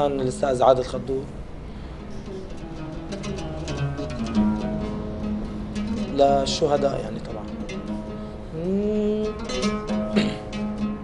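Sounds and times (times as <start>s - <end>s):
oud plucked notes: 0.0s - 11.0s.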